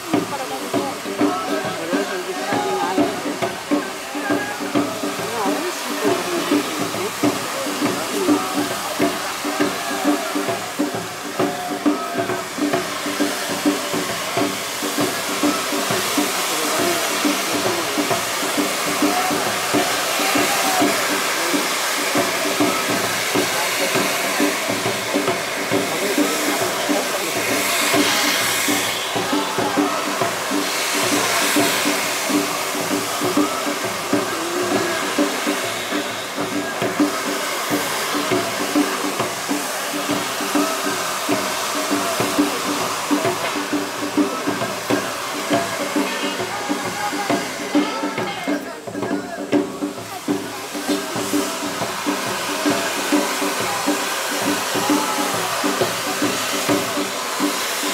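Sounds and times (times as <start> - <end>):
fireworks spraying sparks hissing: 0.0 - 57.9.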